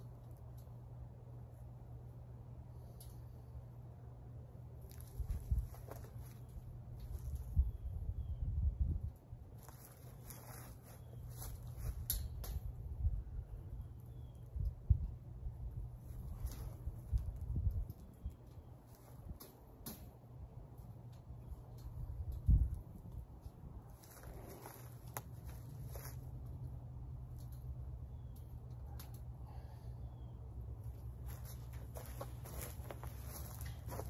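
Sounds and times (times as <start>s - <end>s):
metallic clicks of fence wire: 2.8s - 3.5s, 11.9s - 12.8s, 19.3s - 20.2s, 27.2s - 29.4s.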